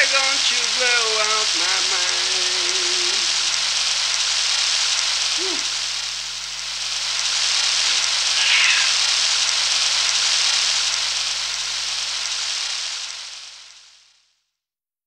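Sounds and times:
low hum: 0:00.0 - 0:13.7
high-pitched hiss: 0:00.0 - 0:14.4.

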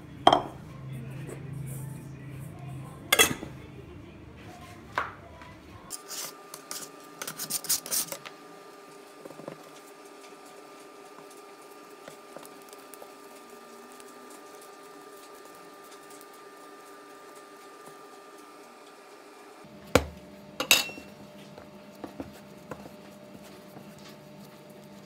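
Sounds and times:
knock on wooden counter: 0:20.0 - 0:20.2
handling bread dough: 0:21.1 - 0:25.0.

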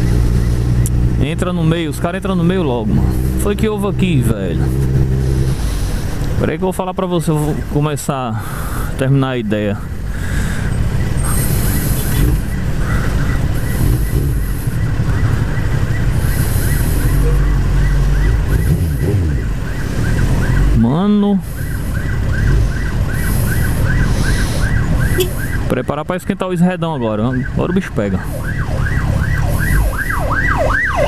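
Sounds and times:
ambulance siren wailing and yelping: 0:10.3 - 0:31.0.

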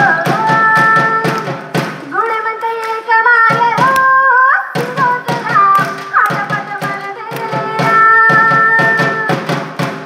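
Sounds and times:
woman singing: 0:00.0 - 0:09.6.

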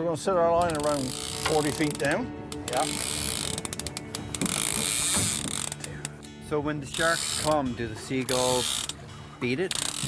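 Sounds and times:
fishing reel clicker ratcheting: 0:00.6 - 0:06.2, 0:06.9 - 0:07.6, 0:08.2 - 0:09.0, 0:09.6 - 0:10.0.

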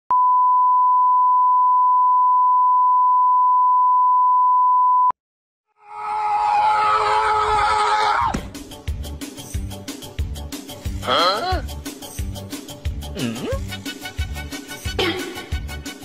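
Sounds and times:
steady test tone beep: 0:00.1 - 0:05.2.

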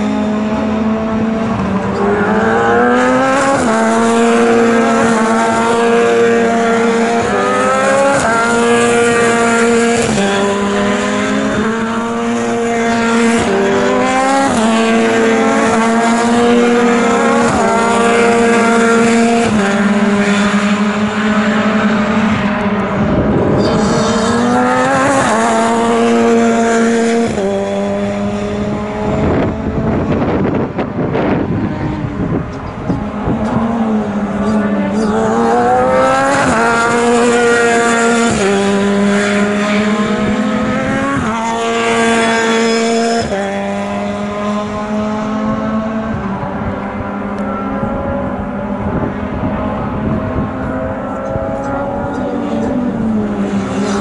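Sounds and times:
race car engines shifting gears: 0:00.0 - 0:54.0
race car passing close by: 0:00.0 - 0:54.0.

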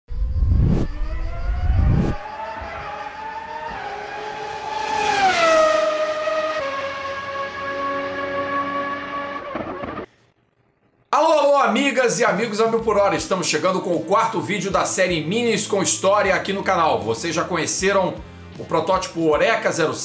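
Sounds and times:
racing car engine: 0:00.3 - 0:10.1.

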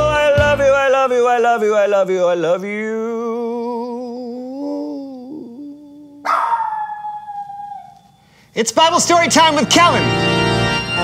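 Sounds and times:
man singing a long note: 0:00.0 - 0:06.3.

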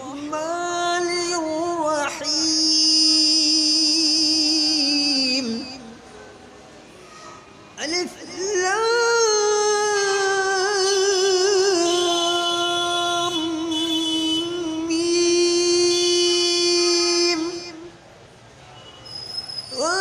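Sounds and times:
person chanting recitation: 0:00.0 - 0:06.0, 0:07.8 - 0:17.9, 0:19.7 - 0:20.0.

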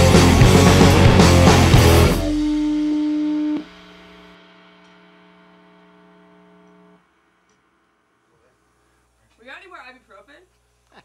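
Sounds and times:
electric guitar note ringing: 0:00.0 - 0:08.2
amplifier hum: 0:00.0 - 0:09.9.

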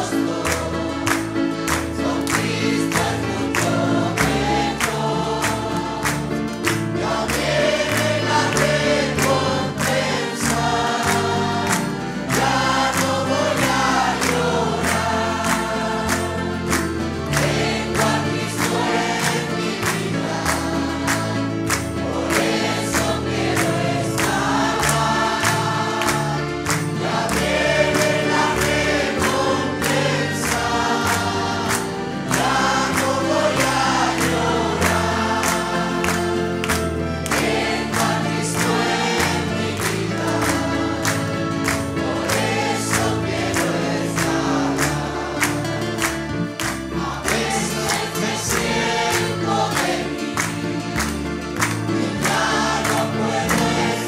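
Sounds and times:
congregation singing a hymn: 0:00.0 - 0:54.0
hands clapping: 0:00.0 - 0:54.0
instrumental accompaniment: 0:00.0 - 0:54.0.

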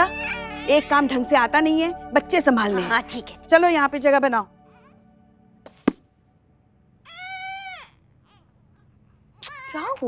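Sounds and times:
infant crying: 0:00.0 - 0:01.2, 0:07.0 - 0:08.5.

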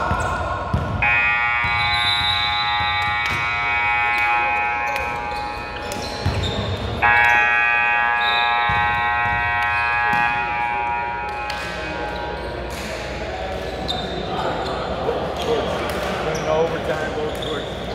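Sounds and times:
scoreboard buzzer blasts: 0:01.0 - 0:12.1.

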